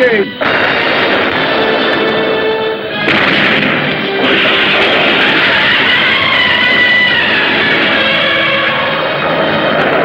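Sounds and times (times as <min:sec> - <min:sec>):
film music: 0:00.0 - 0:10.0
explosions and crashing destruction: 0:00.4 - 0:10.0.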